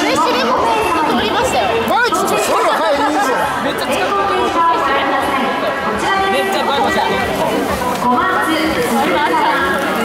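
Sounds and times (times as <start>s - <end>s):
chatter of spectators: 0.0s - 10.0s.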